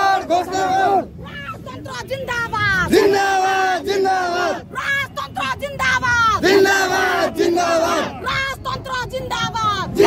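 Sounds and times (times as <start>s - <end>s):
women shouting slogan: 0.0s - 10.0s.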